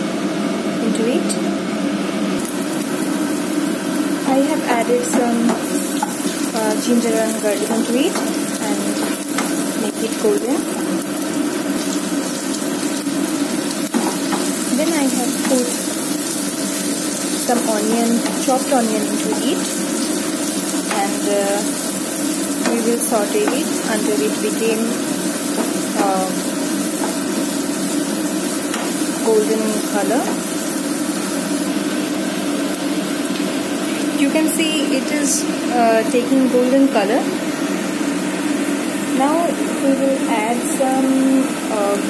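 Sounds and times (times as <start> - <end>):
steady low hum: 0.0 - 42.0
oil sizzling in a wok: 2.4 - 42.0.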